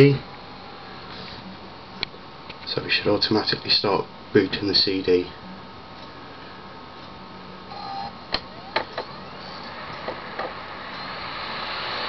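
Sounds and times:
cd drive whirring: 0.0 - 2.7, 5.4 - 12.0
cd drive clicks: 7.0 - 10.6.

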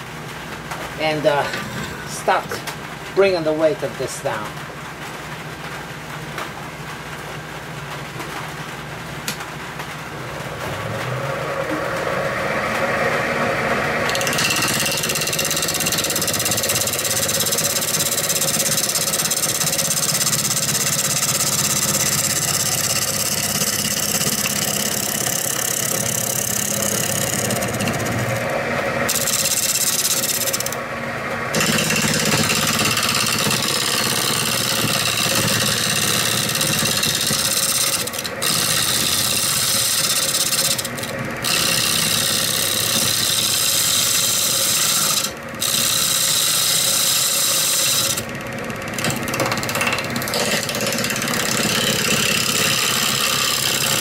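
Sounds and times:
lathe humming: 1.0 - 2.6, 9.8 - 54.0
gouge cutting wood: 12.8 - 30.8, 31.5 - 54.0.

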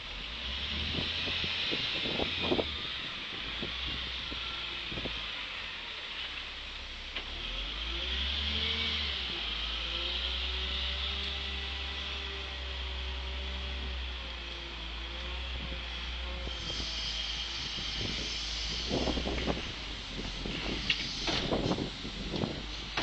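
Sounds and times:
diesel engine running: 0.0 - 23.0.

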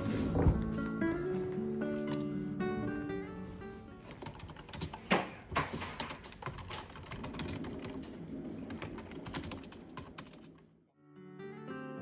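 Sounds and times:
typing on keyboard: 4.0 - 8.0, 8.7 - 10.6.

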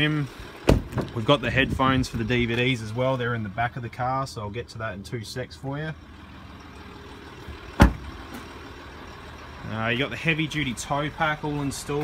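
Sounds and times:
car engine idling: 0.0 - 12.0
car door shutting: 0.6 - 1.2, 7.8 - 8.4.

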